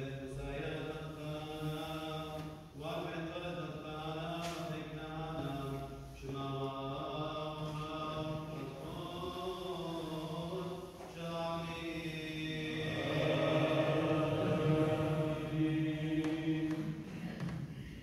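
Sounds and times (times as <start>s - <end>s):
voices chanting: 6.3s - 17.6s.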